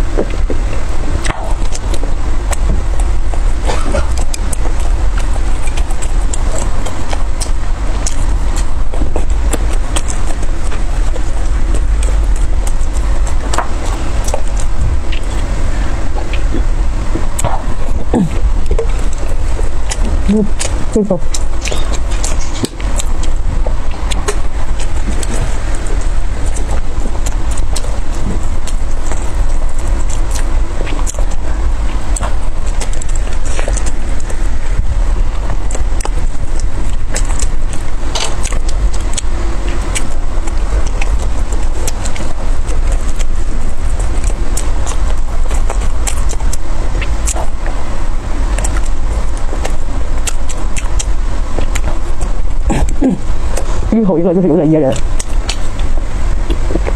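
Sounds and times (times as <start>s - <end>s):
wet mouth clicks: 0.0s - 53.9s, 54.9s - 56.9s
chewing: 0.0s - 56.9s
steady low rumble: 0.0s - 56.9s.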